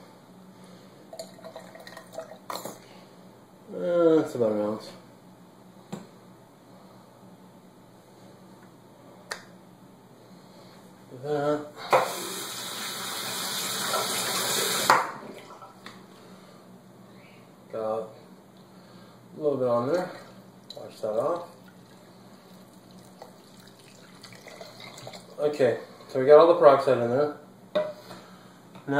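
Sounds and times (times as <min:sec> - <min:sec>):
liquid dripping and plopping: 0:19.9 - 0:25.4
thick liquid pouring into funnel: 0:19.9 - 0:25.4.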